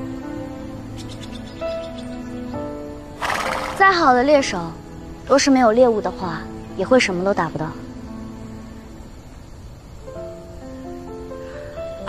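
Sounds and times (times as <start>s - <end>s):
soft background music: 0.0s - 12.0s
horse blowing breath: 3.2s - 3.9s
horse neighing: 3.2s - 3.9s.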